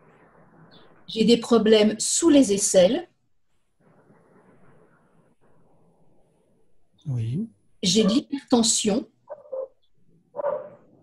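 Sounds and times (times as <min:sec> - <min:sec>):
dog whining: 0:10.4 - 0:10.8.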